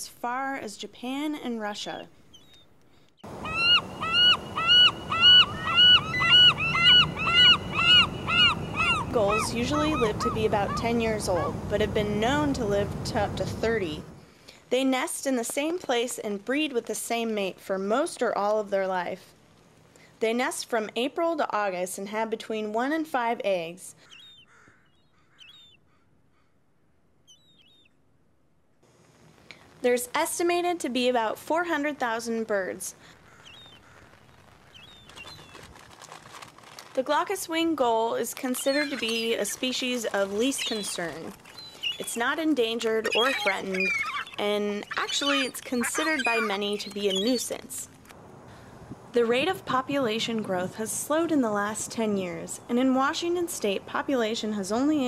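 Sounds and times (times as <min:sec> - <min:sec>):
gull calling: 0:03.2 - 0:12.5, 0:38.2 - 0:47.8.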